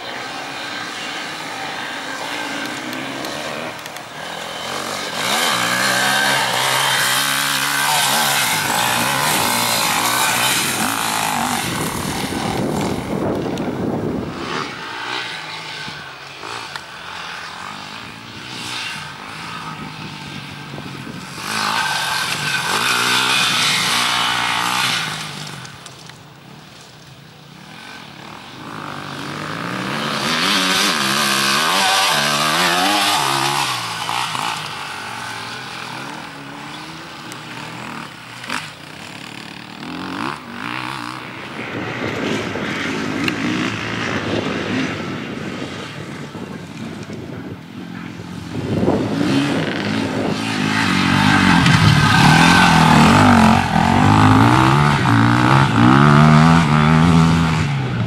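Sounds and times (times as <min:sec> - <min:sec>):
dirt bike engines revving: 0:00.0 - 0:58.0.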